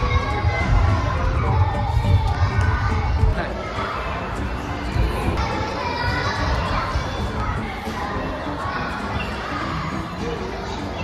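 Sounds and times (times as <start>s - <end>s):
children playing and calling out: 0.0s - 11.0s.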